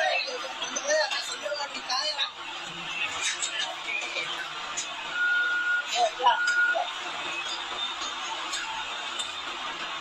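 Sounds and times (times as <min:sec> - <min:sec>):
voices: 0:00.0 - 0:10.0
high beep: 0:05.1 - 0:06.8.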